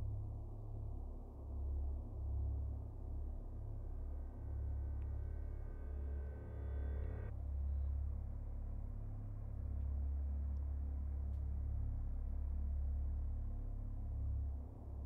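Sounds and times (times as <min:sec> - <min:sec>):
deep low drone: 0:00.0 - 0:15.0.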